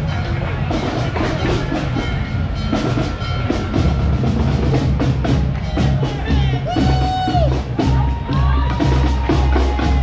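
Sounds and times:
drums steady beat: 0.0s - 10.0s
marching band playing: 0.0s - 10.0s.

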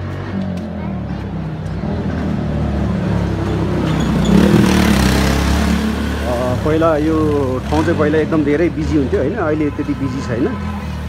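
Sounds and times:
motorcycle engine running: 4.0s - 6.5s.

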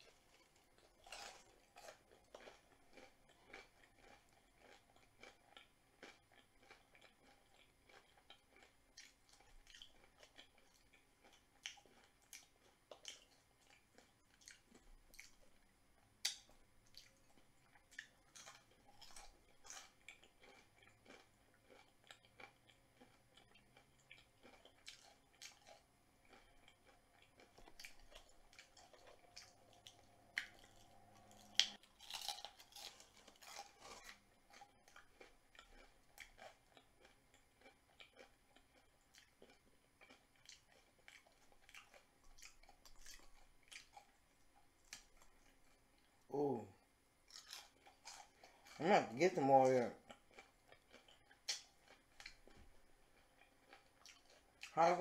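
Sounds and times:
person chewing crunchy food: 0.0s - 55.0s.

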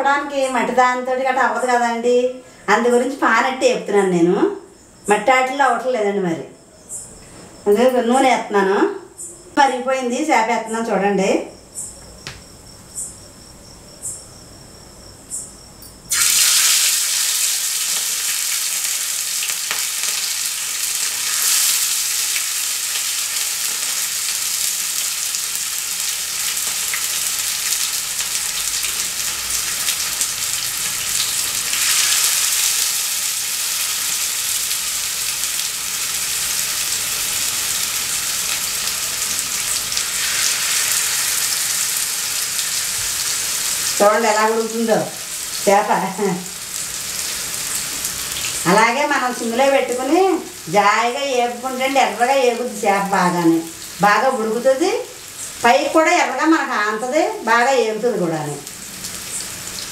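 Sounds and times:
fish sizzling in hot oil: 16.1s - 57.8s, 58.6s - 59.9s.

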